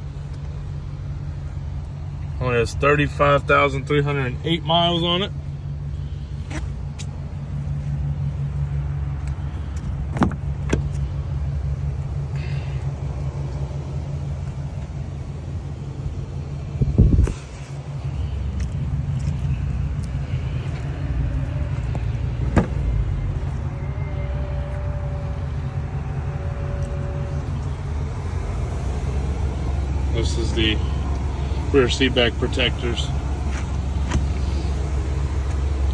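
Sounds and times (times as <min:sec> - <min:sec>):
car engine idling: 0:00.0 - 0:35.9
loud thump: 0:22.4 - 0:22.9.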